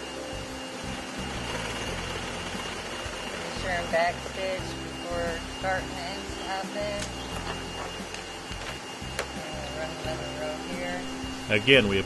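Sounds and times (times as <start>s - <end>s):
vacuum hum: 0.0s - 12.0s.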